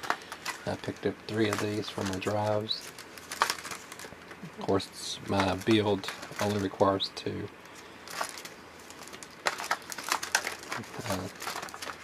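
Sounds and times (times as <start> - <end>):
plastic packaging crackling: 0.0 - 12.0.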